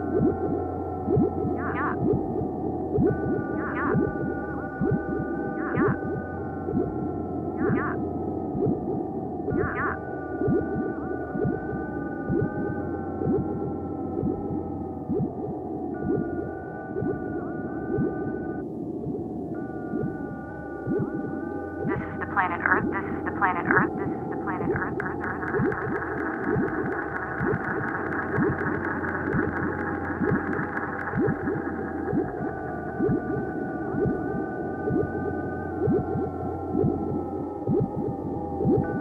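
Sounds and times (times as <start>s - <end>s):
sustained synthesizer tones: 0.0s - 39.0s
steady low bass: 19.0s - 39.0s.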